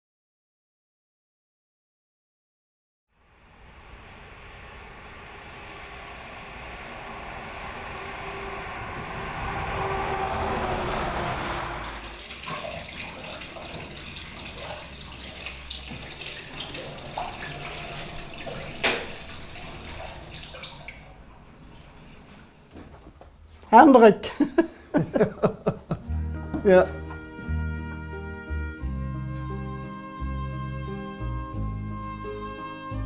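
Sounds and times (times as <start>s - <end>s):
road traffic noise: 5.1s - 23.7s.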